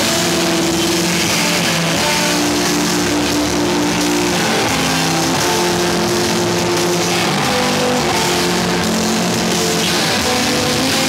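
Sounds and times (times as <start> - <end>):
distorted electric guitars: 0.0 - 11.0.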